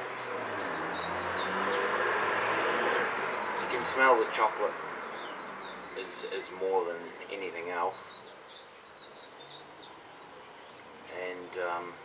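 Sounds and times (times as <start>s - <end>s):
outdoor rushing background: 0.0s - 6.1s
small birds chirping: 0.0s - 12.0s.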